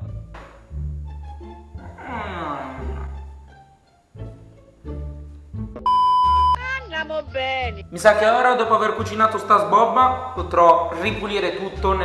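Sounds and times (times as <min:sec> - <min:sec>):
background music with bass line: 0:00.0 - 0:12.0
electronic bleep: 0:05.9 - 0:06.6.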